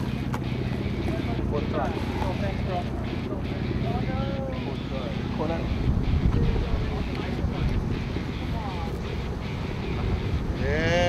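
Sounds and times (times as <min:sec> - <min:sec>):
boat engine: 0:00.0 - 0:11.0
wind buffeting microphone: 0:00.0 - 0:11.0.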